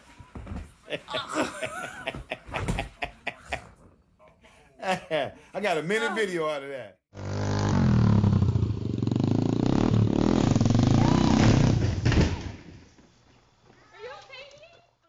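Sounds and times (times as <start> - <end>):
dirt bike engine revving: 7.1 - 12.0.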